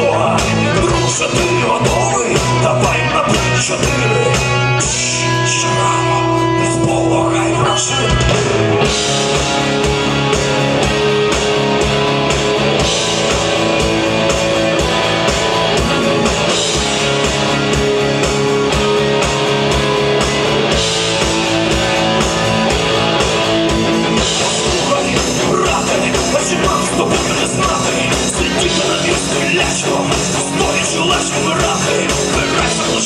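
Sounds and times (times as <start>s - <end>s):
drum kit fast beat: 0.0s - 5.9s, 6.9s - 33.0s
electric guitars: 0.0s - 33.0s.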